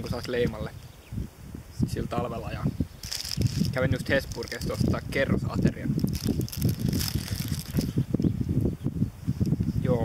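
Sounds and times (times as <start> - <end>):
wind buffeting microphone: 0.0 - 10.0
paper wrapper crackling: 3.0 - 5.0, 6.0 - 7.9.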